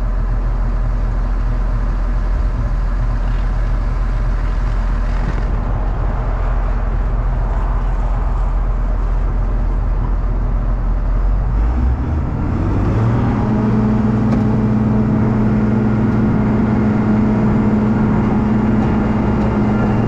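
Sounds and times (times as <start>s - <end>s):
diesel engine revving: 0.0s - 20.0s.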